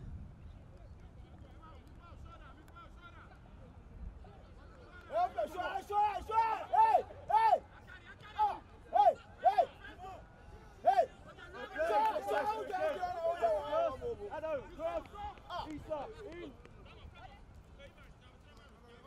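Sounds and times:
men shouting: 10.8s - 15.0s.

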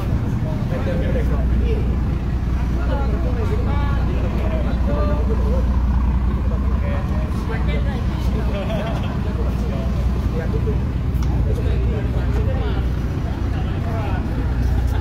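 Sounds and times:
boat engine rumbling: 0.0s - 15.0s
people talking: 0.0s - 15.0s.

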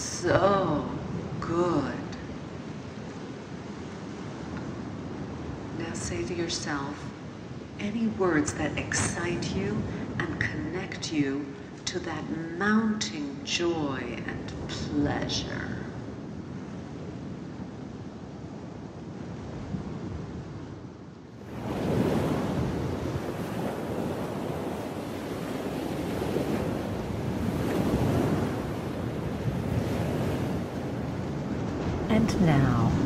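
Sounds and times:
sea waves on sandy beach: 21.4s - 33.0s.

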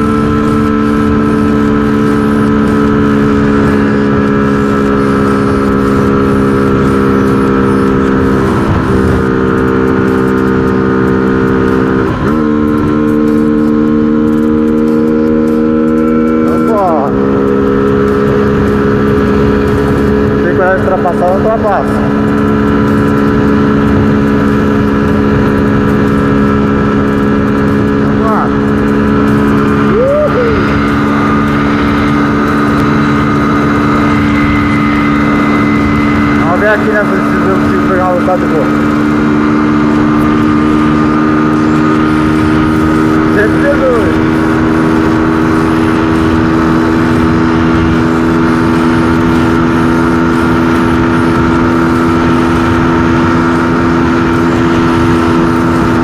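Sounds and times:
motorcycle engine at high revs: 0.0s - 56.0s.

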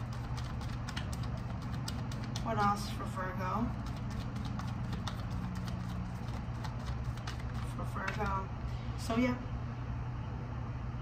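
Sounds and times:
cards being shuffled: 0.0s - 2.7s, 3.7s - 8.3s.

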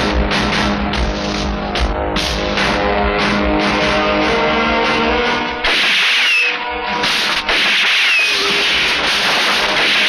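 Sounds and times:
rapid gunfire: 5.6s - 10.0s.

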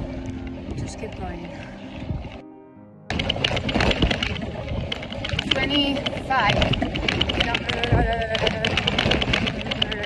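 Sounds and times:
bike and bags rattling: 0.0s - 2.4s, 3.1s - 10.0s
bicycle tyres crunching on gravel: 3.1s - 10.0s.

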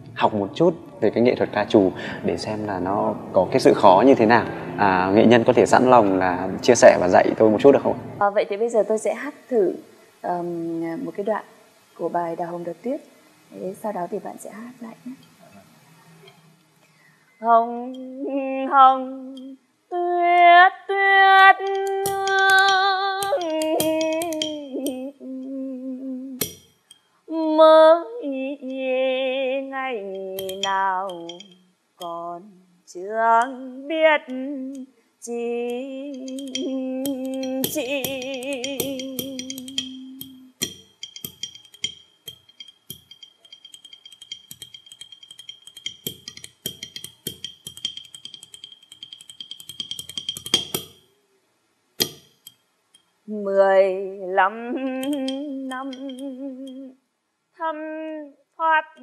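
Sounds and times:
woman singing long ornamented vowel: 8.2s - 11.4s, 12.0s - 15.2s, 17.4s - 26.6s, 27.3s - 40.8s, 53.3s - 57.0s, 57.6s - 59.0s
wooden block beaten with sticks: 21.6s - 25.0s, 26.4s - 26.7s, 30.2s - 32.1s, 36.2s - 51.0s, 52.0s - 52.6s, 55.0s - 56.2s
wooden clapper clicks: 21.6s - 25.0s, 26.4s - 26.8s, 30.1s - 32.1s, 36.1s - 51.0s, 52.0s - 53.1s, 55.0s - 56.8s.

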